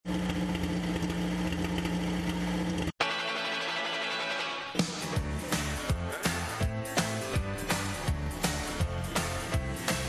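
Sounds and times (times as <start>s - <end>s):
music: 3.0s - 10.0s.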